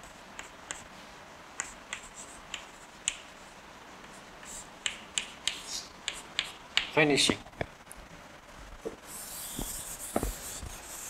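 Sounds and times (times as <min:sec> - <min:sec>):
chalk tapping on blackboard: 0:00.4 - 0:00.9, 0:01.6 - 0:03.3, 0:04.4 - 0:07.0, 0:09.3 - 0:11.0
chalk scraping: 0:09.1 - 0:11.0.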